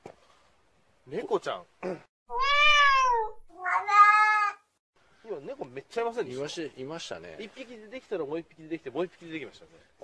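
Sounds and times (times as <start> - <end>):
cat meowing: 2.3 - 4.7.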